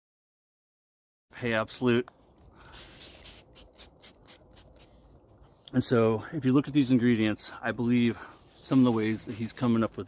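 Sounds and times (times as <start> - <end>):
razor scraping stubble: 2.7 - 5.0.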